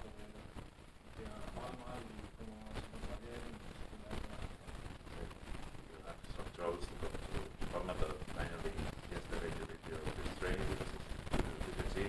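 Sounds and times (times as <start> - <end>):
indistinct low speech: 0.0 - 0.4, 1.1 - 12.0.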